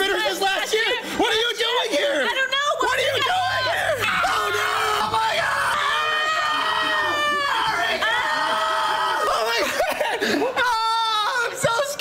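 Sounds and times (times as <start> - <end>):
woman screaming in fright: 3.1 - 9.7.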